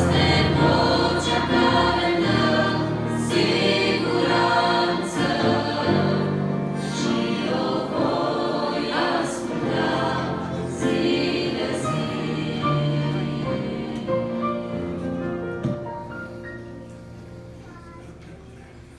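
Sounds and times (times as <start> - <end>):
women's choir singing a hymn: 0.0 - 15.8
small church orchestra: 0.0 - 18.9.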